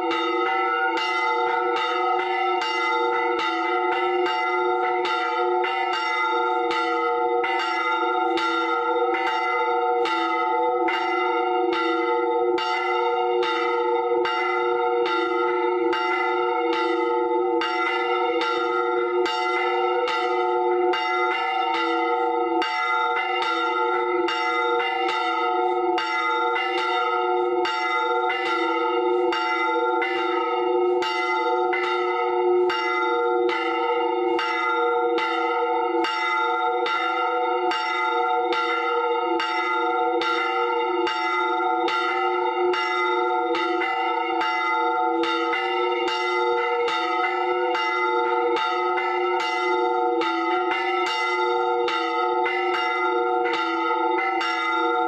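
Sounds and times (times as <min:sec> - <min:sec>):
church bells ringing: 0:00.0 - 0:55.0
hum of overlapping bell tones: 0:00.0 - 0:55.0.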